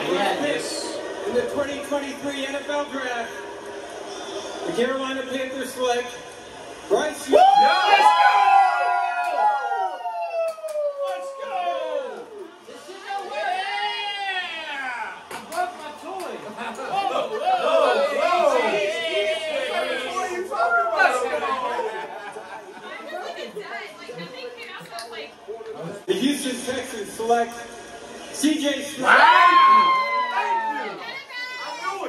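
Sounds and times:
people cheering and yelling: 7.2 - 15.5, 16.9 - 22.3, 29.0 - 32.0
excited overlapping chatter: 11.0 - 32.0.

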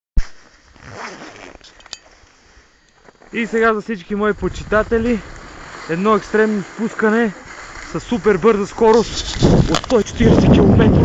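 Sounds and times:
handling rustling and scraping: 0.2 - 4.0, 5.0 - 10.6.

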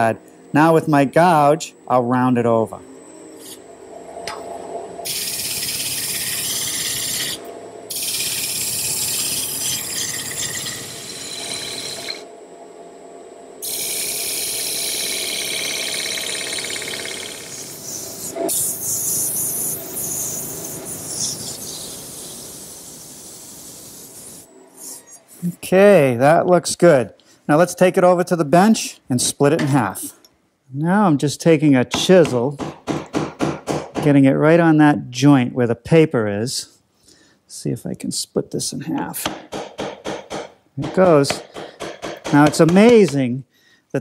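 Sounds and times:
wood lathe cutting hiss: 5.0 - 12.3, 13.6 - 25.2.

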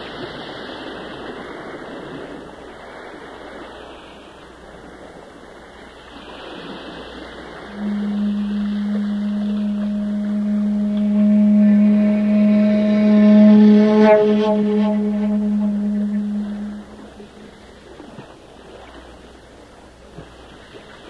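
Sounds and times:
bamboo flute long note: 7.5 - 17.7.

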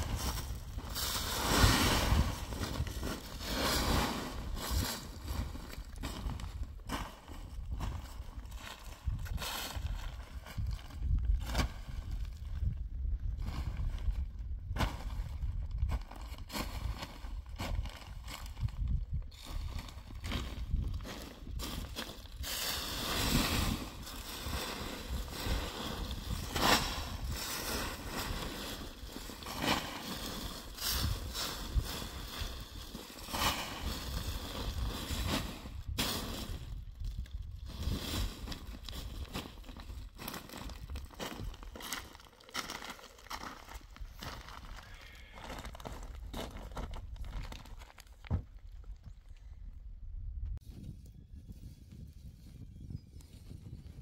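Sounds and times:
dry leaves rustling: 23.7 - 35.4.

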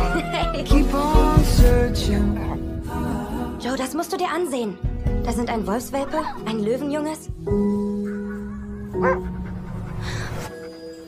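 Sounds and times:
wolf whimper: 8.0 - 11.0.

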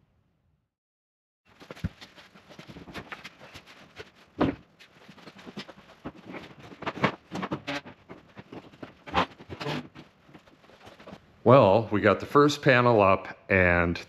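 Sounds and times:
footsteps on ladder rungs: 1.5 - 11.2
plywood sheet knocking and scraping: 1.5 - 11.2.

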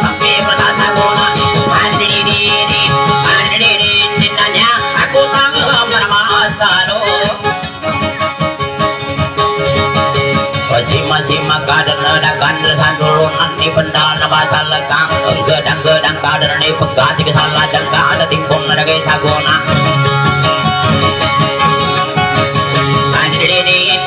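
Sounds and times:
man singing: 0.0 - 7.7, 10.5 - 20.5, 22.8 - 24.0
small guitar plucking and strumming: 0.0 - 24.0.

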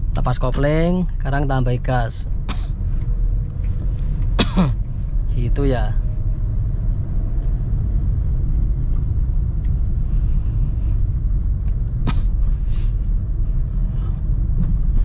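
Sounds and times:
car engine and tyres rumbling: 0.0 - 15.0.

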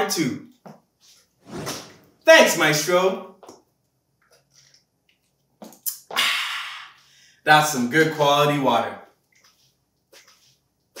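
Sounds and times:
short sharp sounds: 1.4 - 2.1.

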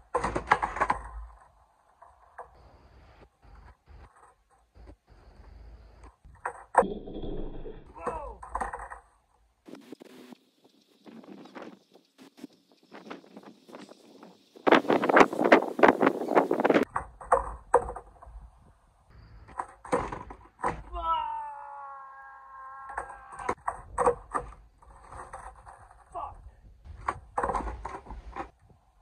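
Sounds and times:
skateboard deck clattering: 0.0 - 2.6, 19.5 - 20.9, 22.9 - 26.1, 26.9 - 28.6
skateboard wheels rolling: 0.0 - 6.8, 22.8 - 26.1, 26.9 - 29.0
skater vocal outbursts: 7.9 - 8.4, 20.8 - 23.6.

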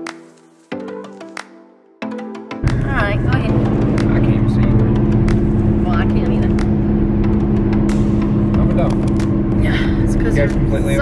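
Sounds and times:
car cabin road and engine rumble: 2.6 - 11.0.

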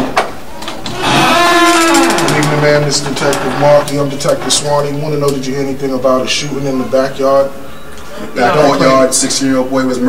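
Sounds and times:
door hinge creaking: 0.5 - 5.6.

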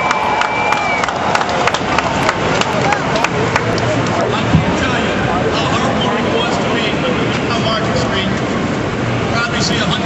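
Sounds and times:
crowd din: 0.0 - 10.0
man speaking over loudspeaker: 4.2 - 8.4, 9.3 - 10.0.

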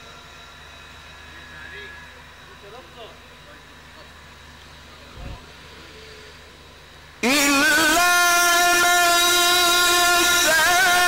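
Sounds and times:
amplified voice reciting: 7.2 - 11.0.

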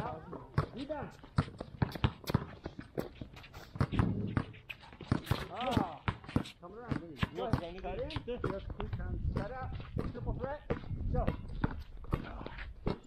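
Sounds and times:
basketballs bouncing on floor: 0.0 - 13.0
voices: 5.2 - 11.4.

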